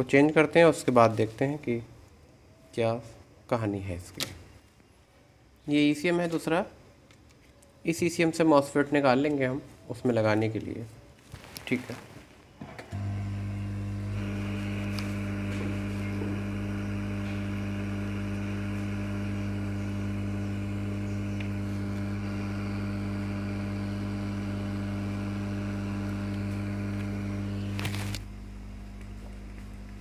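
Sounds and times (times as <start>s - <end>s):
hot air gun motor hum: 12.9s - 28.8s.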